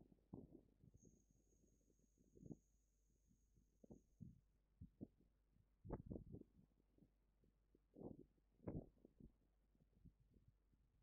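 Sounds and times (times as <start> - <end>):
faint high whine: 0.8 - 4.5
faint low thumps and crackles: 3.8 - 7.1, 7.7 - 11.0.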